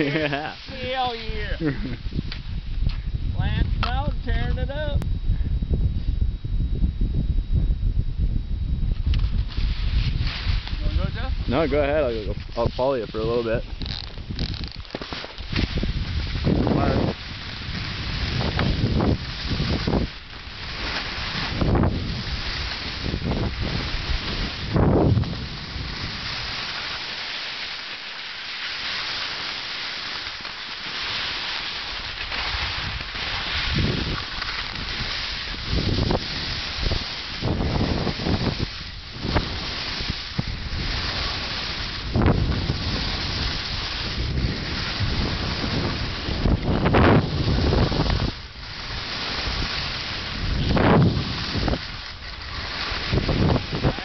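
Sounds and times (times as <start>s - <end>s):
skis sliding on snow: 0.0s - 2.4s, 9.1s - 54.0s
wind buffeting microphone: 0.0s - 26.8s, 32.0s - 54.0s.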